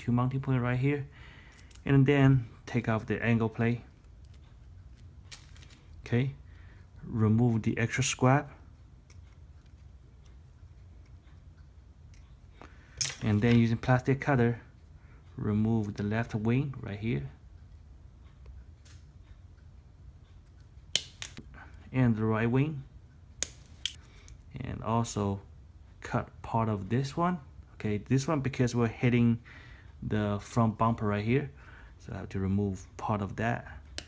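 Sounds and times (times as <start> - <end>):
handling small plastic parts: 3.6 - 6.1
side nippers snapping plastic: 21.0 - 21.4.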